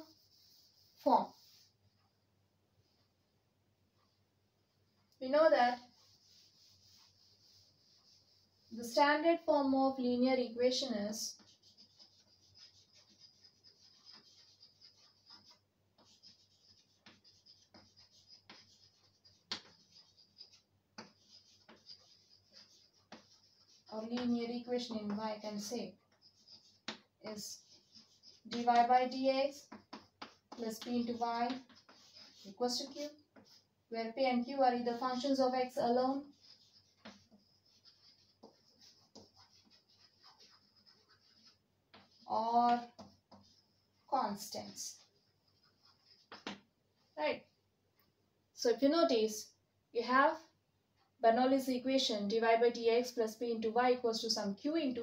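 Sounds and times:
chalk scratching on blackboard: 0:00.0 - 0:01.8, 0:05.3 - 0:09.0, 0:10.8 - 0:46.6.

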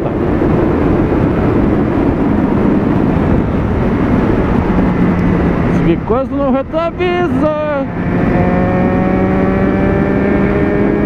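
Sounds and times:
motorcycle engine cruising: 0:00.0 - 0:11.0
wind and road noise: 0:00.0 - 0:11.0.

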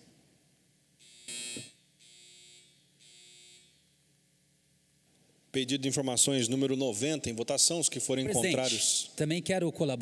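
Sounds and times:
electronic buzzer: 0:01.0 - 0:04.0.

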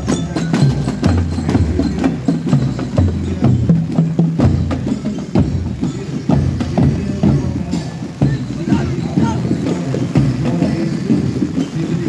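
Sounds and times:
street parade music: 0:00.0 - 0:12.0
voices: 0:00.0 - 0:12.0.

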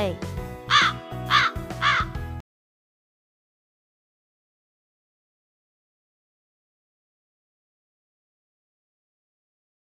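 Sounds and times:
background music: 0:00.0 - 0:02.4
crow cawing: 0:00.7 - 0:02.2.

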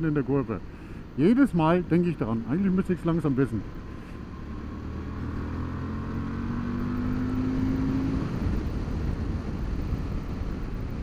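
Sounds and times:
motorcycle engine accelerating: 0:03.2 - 0:11.0
wind rushing over microphone: 0:04.2 - 0:11.0.

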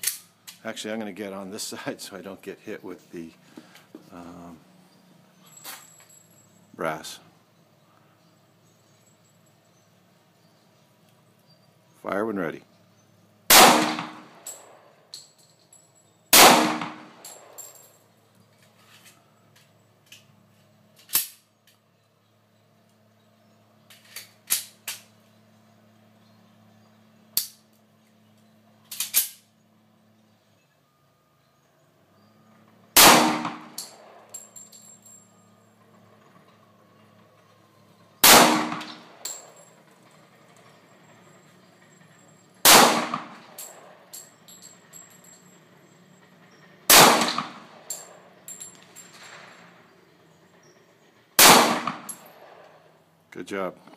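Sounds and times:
pistol shots with echo: 0:13.5 - 0:14.8, 0:16.3 - 0:17.6, 0:33.0 - 0:34.2, 0:38.2 - 0:39.2, 0:42.6 - 0:44.0, 0:46.9 - 0:48.2, 0:51.4 - 0:52.7.

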